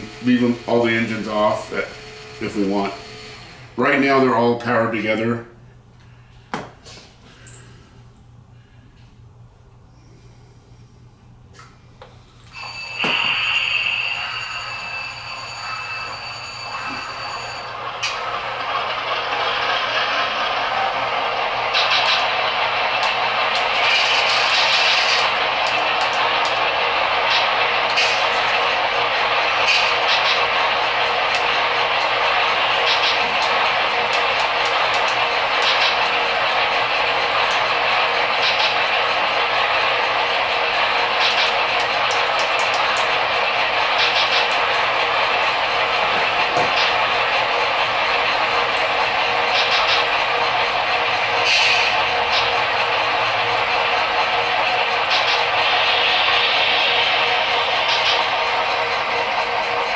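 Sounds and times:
high whistle-like tone: 12.5 - 17.7.

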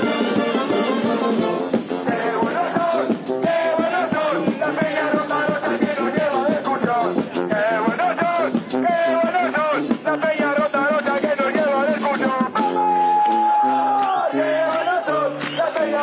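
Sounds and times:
crowd singing and shouting: 0.0 - 16.0
street brass band playing: 0.0 - 16.0.

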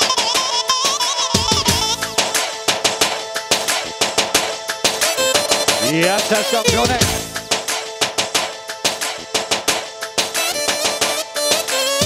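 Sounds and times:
drum strikes: 5.4 - 8.4.

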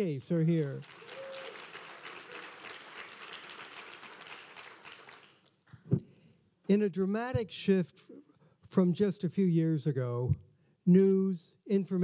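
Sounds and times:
audience applauding: 0.7 - 5.5.

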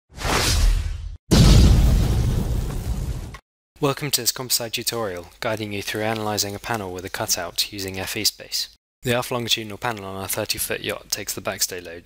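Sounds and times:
heavy impact with low boom: 1.3 - 3.4.

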